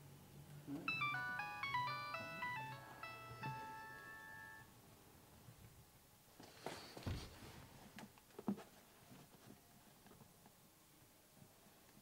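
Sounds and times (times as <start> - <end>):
phone ringtone tune: 0.9 - 4.7.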